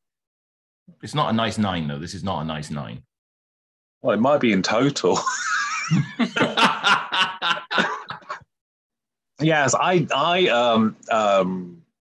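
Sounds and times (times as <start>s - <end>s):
men laughing: 5.1s - 8.6s.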